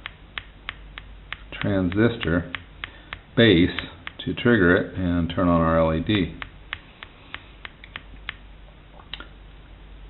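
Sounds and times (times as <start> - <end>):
fingertip taps on earphone: 0.0 - 4.2.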